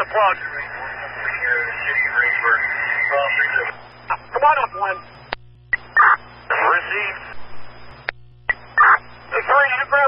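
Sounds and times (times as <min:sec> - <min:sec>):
garbled radio speech: 0:00.0 - 0:10.0
radio static and hiss: 0:00.0 - 0:10.0.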